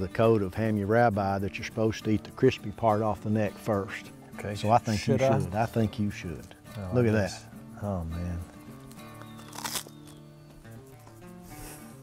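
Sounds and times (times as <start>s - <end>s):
background music: 0.0s - 12.0s
crunch of biting crispy skin: 8.8s - 10.3s.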